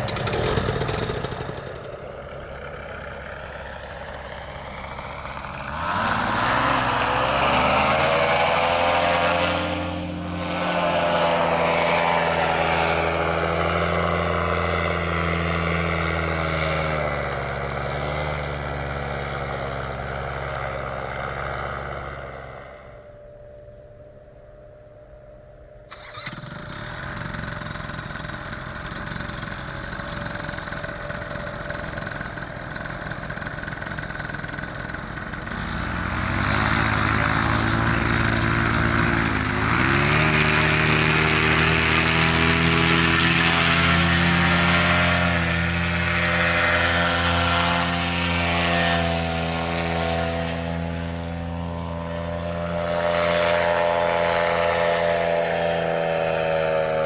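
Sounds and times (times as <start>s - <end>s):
paramotor engine and propeller: 0.0s - 57.0s.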